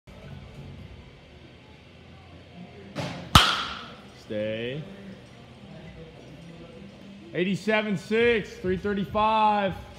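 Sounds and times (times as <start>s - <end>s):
bat cracking a ball: 3.0s - 4.1s.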